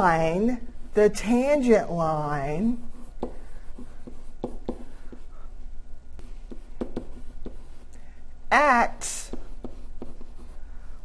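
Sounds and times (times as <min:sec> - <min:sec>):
faint low hum: 0:00.0 - 0:11.0
stylus tapping and scratching: 0:02.7 - 0:05.5, 0:06.2 - 0:08.0, 0:09.2 - 0:10.6.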